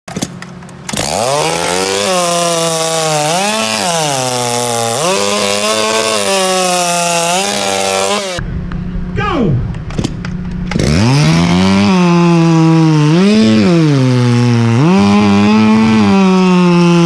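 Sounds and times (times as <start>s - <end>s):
chainsaw revving: 0.9s - 8.4s, 10.7s - 17.0s.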